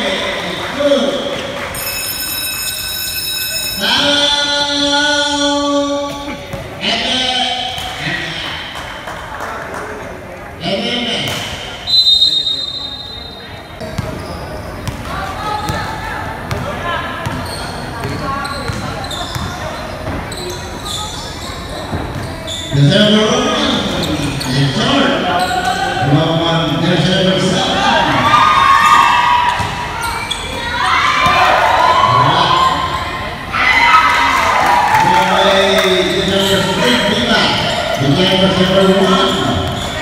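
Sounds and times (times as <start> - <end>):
shrill whistle: 11.8 - 13.5
echoing voices in hall: 20.7 - 40.0.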